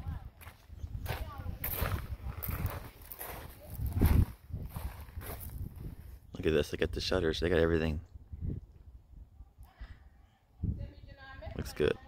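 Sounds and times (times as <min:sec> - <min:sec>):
footsteps crunching on gravel: 0:00.1 - 0:06.0.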